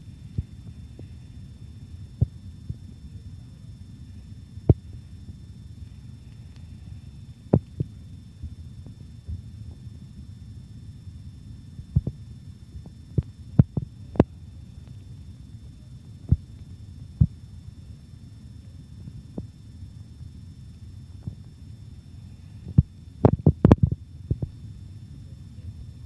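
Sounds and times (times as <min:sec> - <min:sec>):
faint high-pitched whine: 0:00.0 - 0:26.0
steady low hum: 0:00.0 - 0:26.0.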